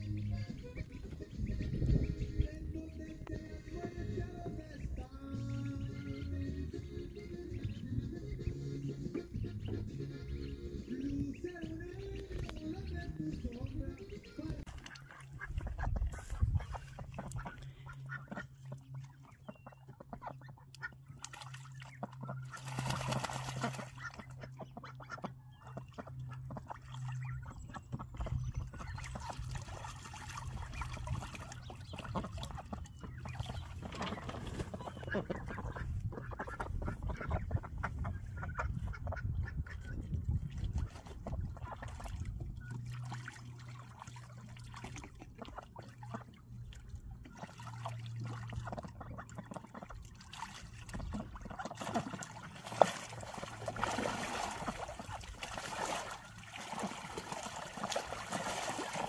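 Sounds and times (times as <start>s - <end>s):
ducks quacking: 0.0s - 59.0s
ducks splashing in water: 0.0s - 59.0s.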